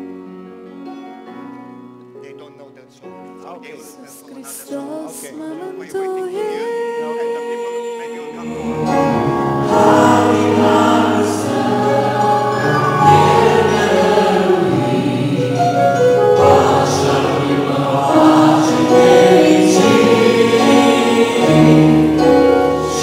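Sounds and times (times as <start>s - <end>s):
choir singing a hymn: 8.0s - 23.0s.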